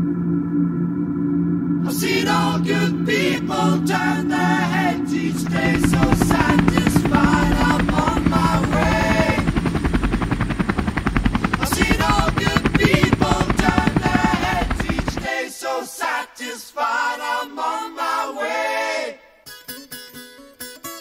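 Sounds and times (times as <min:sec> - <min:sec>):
a cappella singing: 0:01.8 - 0:10.6, 0:11.5 - 0:19.4
drone propellers whirring: 0:04.5 - 0:15.3.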